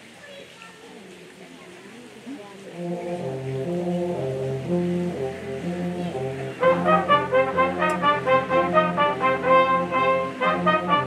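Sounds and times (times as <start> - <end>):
wind band playing: 2.7 - 11.0.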